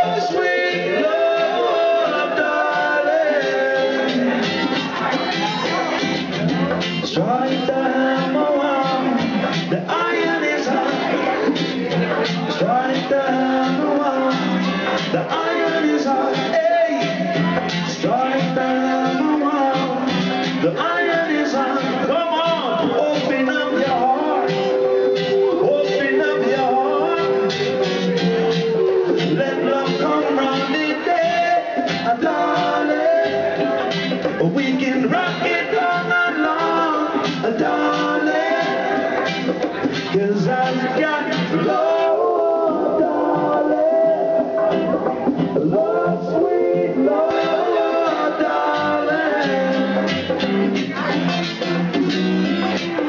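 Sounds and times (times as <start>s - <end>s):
acoustic guitars: 0.0s - 53.0s.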